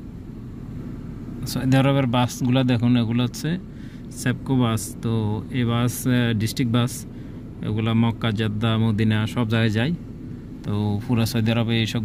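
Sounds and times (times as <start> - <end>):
car engine rumble inside cabin: 0.0 - 12.0
man speaking: 1.4 - 10.0, 10.6 - 12.0.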